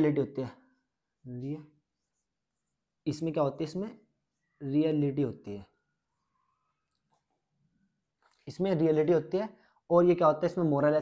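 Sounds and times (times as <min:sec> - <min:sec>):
person speaking: 0:00.0 - 0:05.9, 0:08.2 - 0:11.0.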